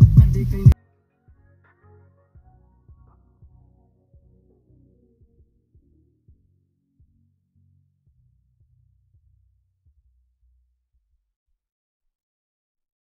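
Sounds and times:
faint music with bass and beat: 0.0 - 7.3.

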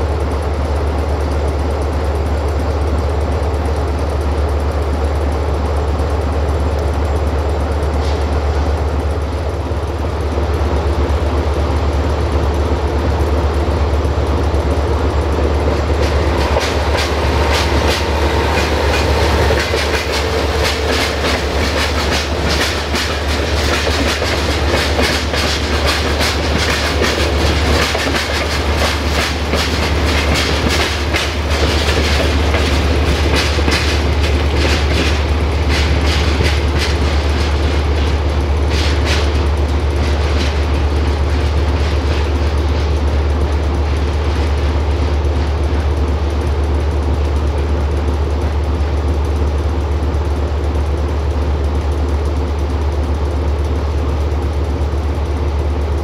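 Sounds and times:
locomotive diesel engine rumble: 0.0 - 56.0
train wheels clattering over rail joints: 0.0 - 56.0.

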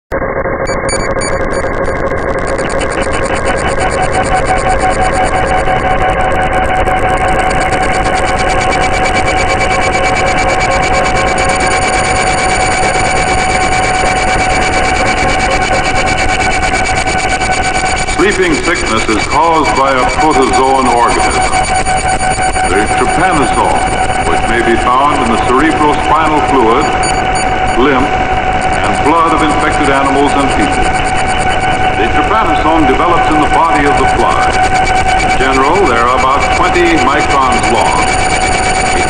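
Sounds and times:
fast-pulsing high-pitched tone: 0.6 - 39.0
steady held tones: 0.7 - 39.0.

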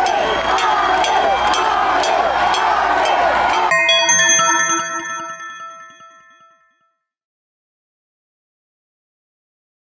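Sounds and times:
chiming jingle tones: 3.7 - 6.8.

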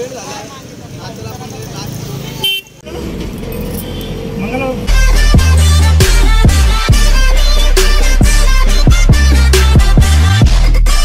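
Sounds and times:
voices chatting: 0.0 - 5.0
street and vehicle noise: 0.0 - 11.0
vehicle horn toot: 2.4 - 2.8
loud music with heavy beat: 4.9 - 11.0.

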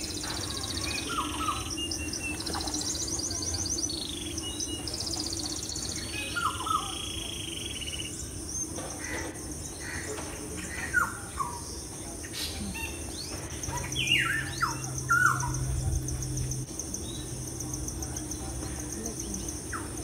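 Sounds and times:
high insect-like hum: 0.0 - 20.0
songbirds chirping and trilling: 0.0 - 20.0.

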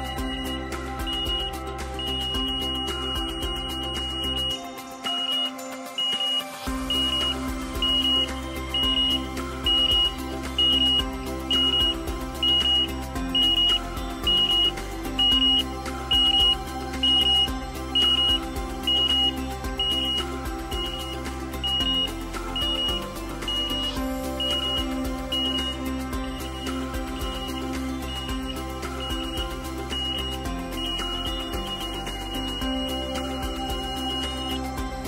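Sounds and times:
high-pitched warning beep: 0.0 - 34.8
background music: 0.0 - 35.0.

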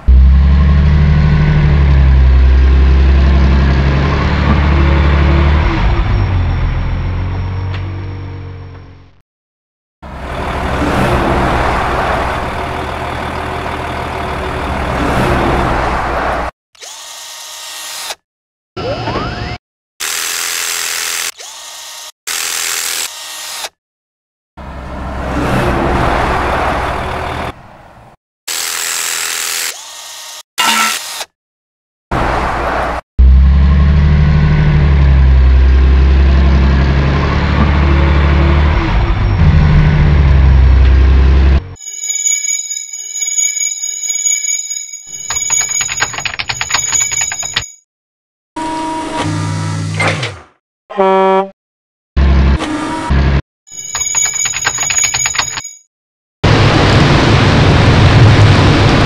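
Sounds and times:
heavy vehicle engine rumbling: 0.0 - 9.1, 10.0 - 16.4, 33.2 - 41.8
rough machinery noise: 10.1 - 15.0.

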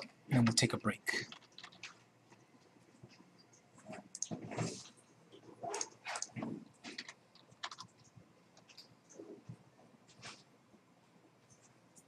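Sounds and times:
computer keyboard typing: 1.2 - 2.0, 5.8 - 8.8.

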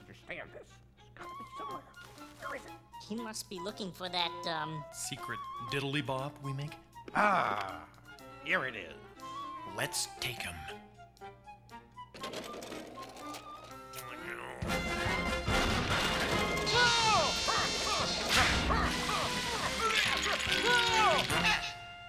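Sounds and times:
soft music: 0.0 - 22.0
cartoon crashes and whacks: 15.6 - 21.6.

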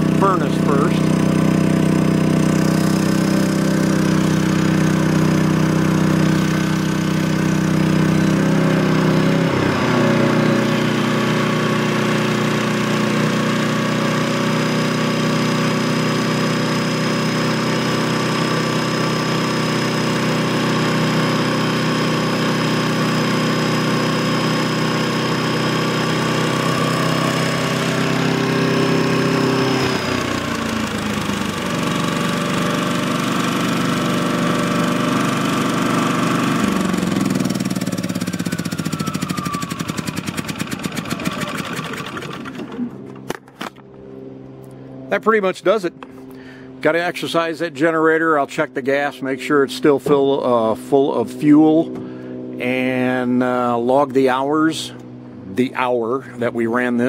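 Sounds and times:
generator engine running: 0.0 - 57.0.

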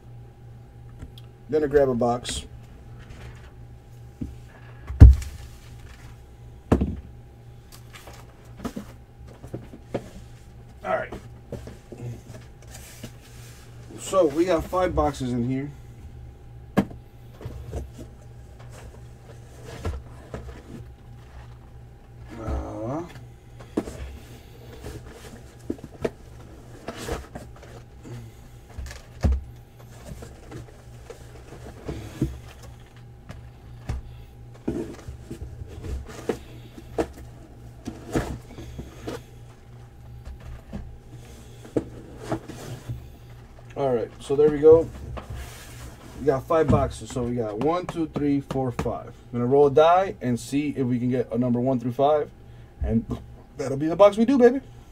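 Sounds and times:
steady low hum: 0.0 - 54.9
cardboard boxes knocking and bumping: 46.6 - 49.0.

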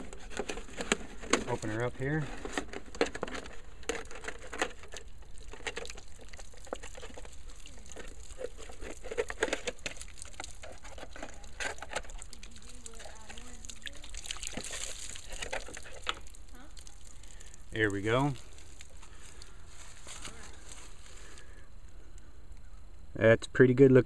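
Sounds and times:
water running out: 4.6 - 20.7.

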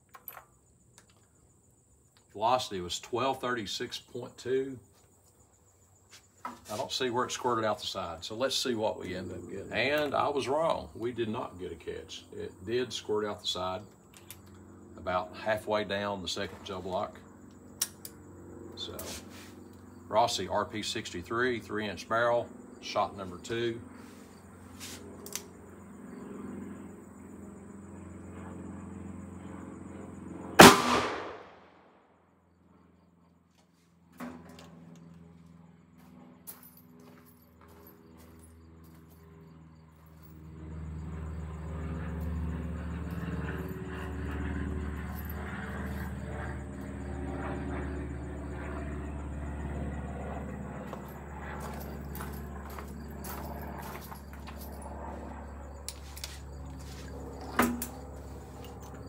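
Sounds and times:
revolver gunshot: 30.6 - 32.0.

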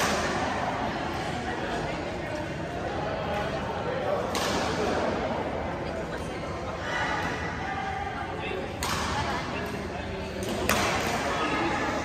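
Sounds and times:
voices in a hall: 0.0 - 12.0
racket striking shuttlecock: 10.4 - 11.2.

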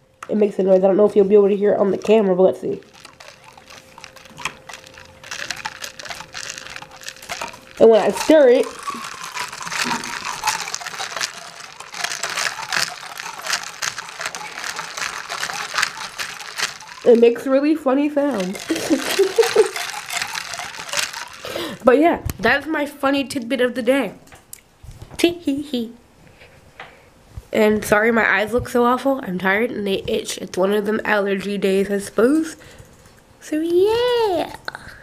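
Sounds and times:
straw squeaking through cup lid: 1.9 - 17.4, 18.4 - 21.8.

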